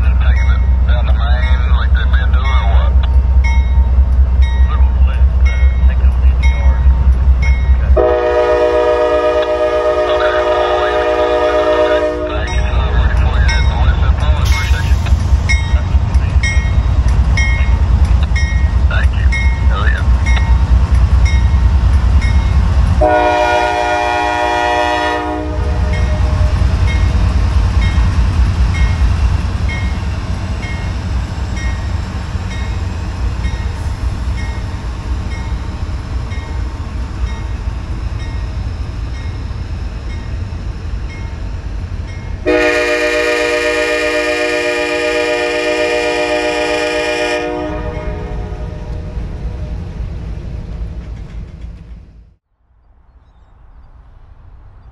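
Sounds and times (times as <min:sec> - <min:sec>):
diesel locomotive rumble: 0:00.0 - 0:52.4
train cars rolling on rails: 0:00.0 - 0:52.4
locomotive air horn blasts: 0:08.0 - 0:12.5, 0:23.0 - 0:26.6, 0:42.4 - 0:48.9.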